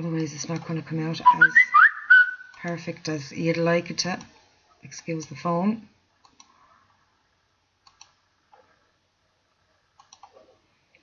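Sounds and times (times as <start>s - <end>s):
computer mouse clicks: 6.2s - 6.6s, 7.8s - 8.2s, 10.0s - 10.4s.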